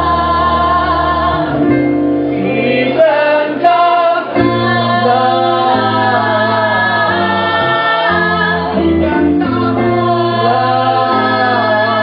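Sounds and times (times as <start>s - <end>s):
mixed choir singing in harmony: 0.0s - 12.0s.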